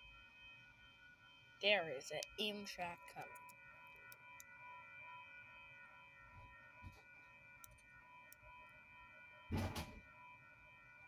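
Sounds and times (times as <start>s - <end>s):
faint high-pitched tones: 0.0s - 11.0s.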